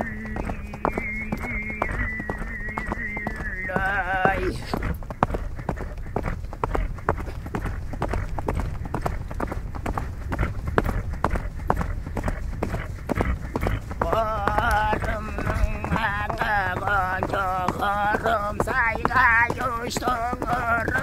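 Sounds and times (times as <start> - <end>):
throat singing voice: 0.0 - 5.0, 12.6 - 21.0
horse hooves clopping: 0.0 - 21.0.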